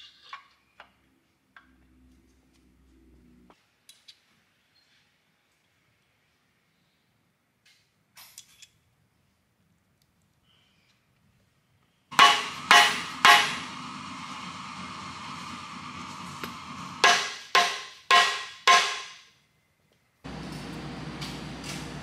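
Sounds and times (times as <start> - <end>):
metal strikes with ringing: 12.2 - 13.6, 17.0 - 19.2.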